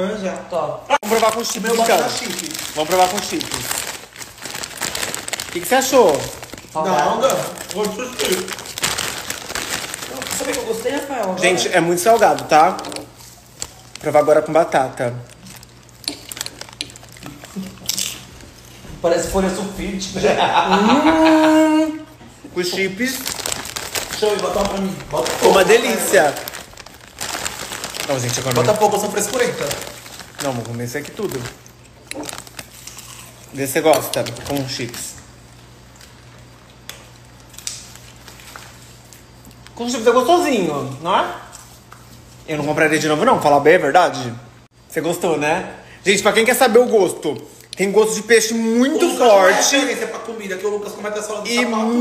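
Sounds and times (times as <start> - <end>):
person speaking: 0.0 - 4.0, 5.4 - 13.2, 19.0 - 31.6, 46.1 - 52.0.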